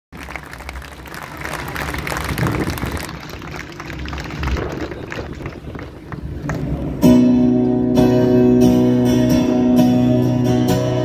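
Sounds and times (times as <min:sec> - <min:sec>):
audience applause: 0:00.1 - 0:06.9
crowd noise: 0:00.1 - 0:11.0.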